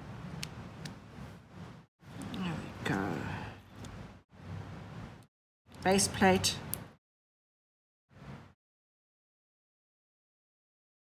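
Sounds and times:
low background hum: 0.0 - 7.0.

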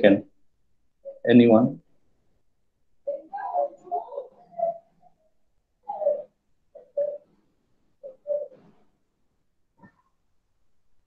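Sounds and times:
bird cooing: 3.0 - 7.4, 8.0 - 8.9.

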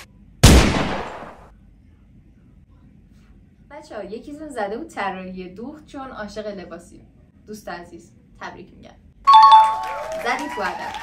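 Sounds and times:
gunshot: 0.4 - 1.5.

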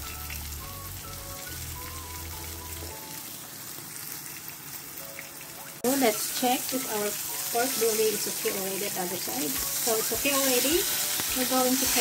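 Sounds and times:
oil sizzling in a pan: 0.0 - 12.0.

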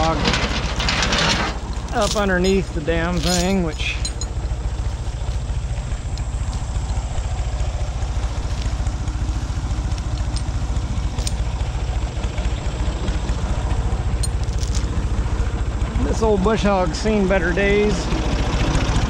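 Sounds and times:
tractor engine running: 0.0 - 19.0.

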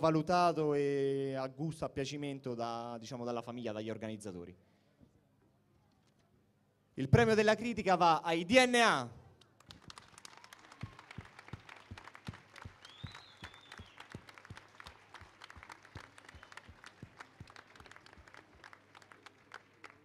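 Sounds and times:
faint scattered applause: 9.4 - 20.0.

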